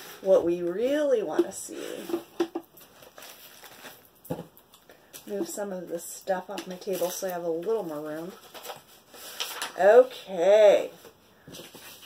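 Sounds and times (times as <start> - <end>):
plastic packaging handling: 2.0 - 5.3, 6.5 - 9.9.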